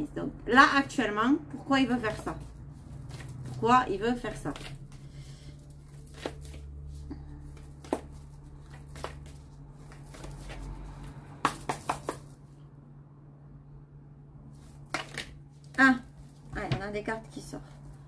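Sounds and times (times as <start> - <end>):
low steady hum: 0.0 - 18.0
cards being shuffled: 2.0 - 3.6, 4.2 - 12.5, 14.6 - 16.5.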